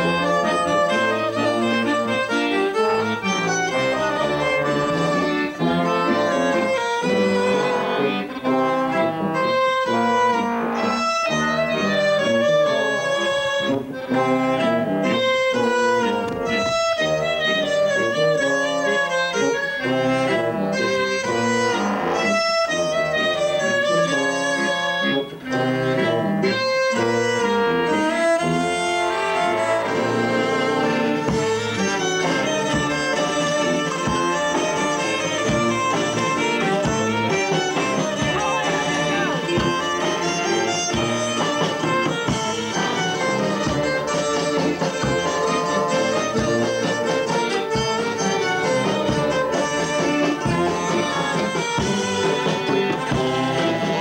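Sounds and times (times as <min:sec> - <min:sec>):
accordion: 0:00.0 - 0:54.0
electric violin: 0:00.0 - 0:54.0
hurdy-gurdy: 0:00.0 - 0:54.0
trombone: 0:00.0 - 0:54.0
drums: 0:29.8 - 0:54.0
sousaphone: 0:34.8 - 0:41.9.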